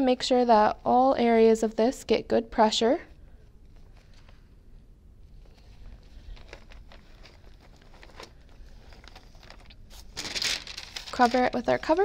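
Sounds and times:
parchment paper rustling: 3.5s - 12.0s.

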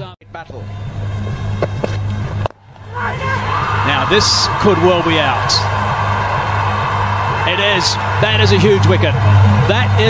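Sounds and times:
commentator speaking: 3.2s - 5.7s.

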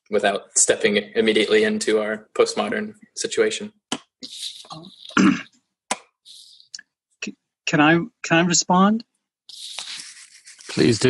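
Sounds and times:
person clearing throat: 5.0s - 5.5s.

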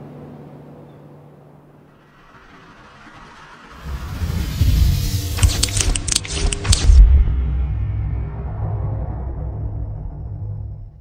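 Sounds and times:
deep rumble: 1.4s - 11.0s
rising whoosh: 1.5s - 11.0s
glitchy crackles: 1.9s - 7.3s.

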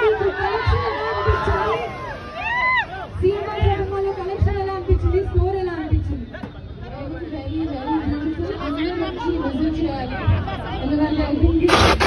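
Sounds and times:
crowd chatter: 0.0s - 12.0s
woman speaking into a microphone: 3.2s - 11.7s.

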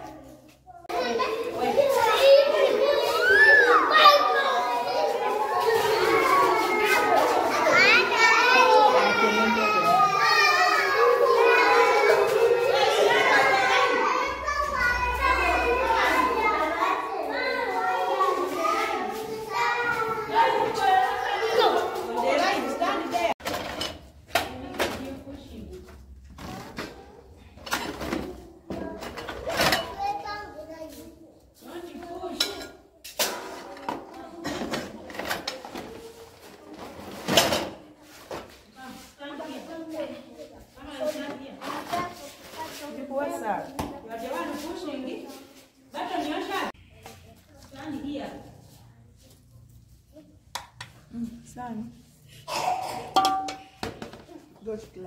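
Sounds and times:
young children calling out and talking: 0.0s - 23.4s, 26.5s - 36.8s, 39.0s - 48.0s, 52.2s - 54.6s
plates clinking: 53.0s - 54.2s.

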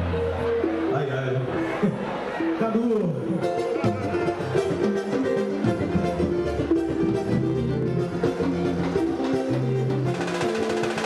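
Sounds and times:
live band playing: 0.0s - 11.0s
percussion beat: 8.4s - 11.0s.

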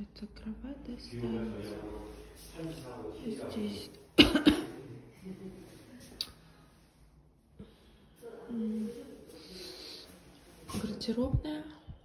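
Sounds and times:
person coughing: 4.2s - 4.9s.

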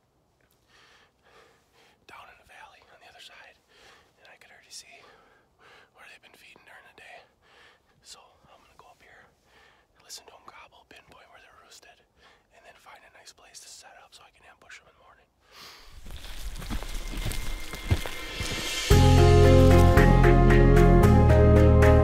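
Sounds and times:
man whispering: 2.0s - 15.4s.

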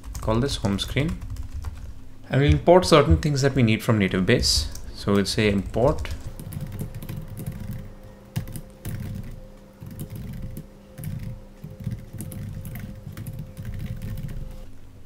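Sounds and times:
computer keyboard typing: 0.0s - 3.3s, 4.3s - 14.7s
low hum: 0.0s - 15.0s.

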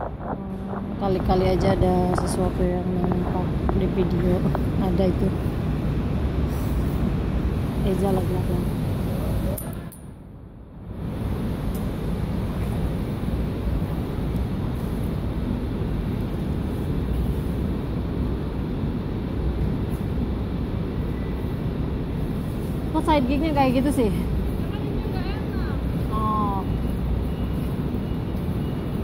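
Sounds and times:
low rumbling background noise: 0.0s - 29.0s.

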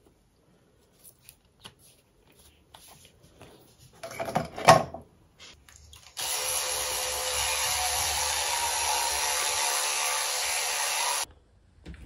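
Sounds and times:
electric toothbrush buzzing: 6.2s - 11.3s.

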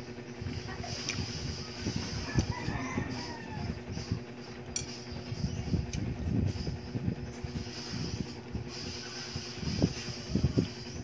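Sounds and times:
rooster crowing: 2.2s - 3.9s.

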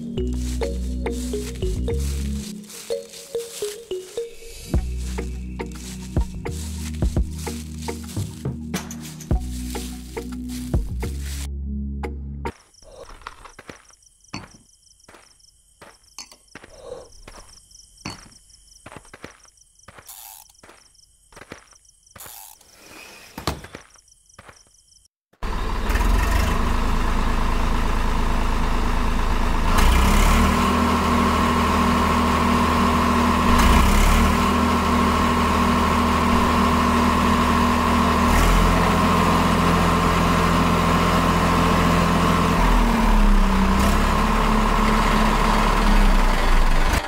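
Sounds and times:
higher motor whine: 0.0s - 8.5s, 25.5s - 47.0s
small electric motors whirring: 20.1s - 20.6s, 22.2s - 22.8s.

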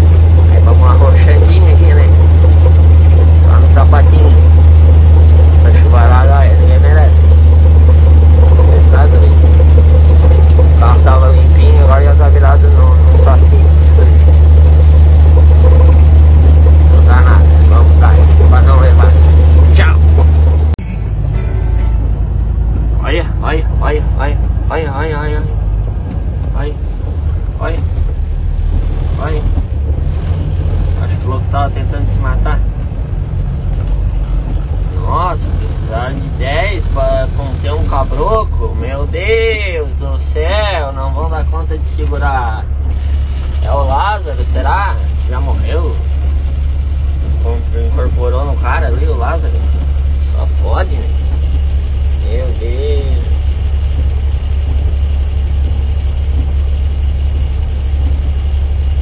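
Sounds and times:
voices: 0.0s - 22.2s, 22.8s - 33.3s, 33.9s - 58.8s
truck engine droning: 0.0s - 59.0s.

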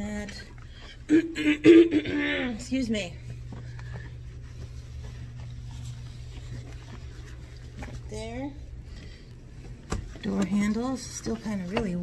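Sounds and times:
steady low hum: 0.0s - 12.0s
gloved hand rustling cloth: 2.6s - 12.0s.

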